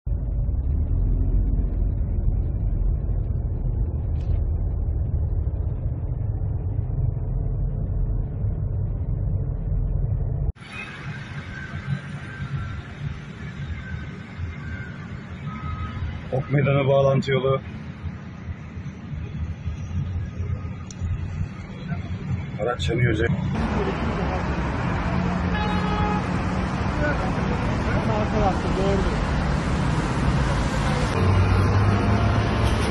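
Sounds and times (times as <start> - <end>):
car cabin road rumble: 0.0 - 32.9
car horn: 25.4 - 26.4.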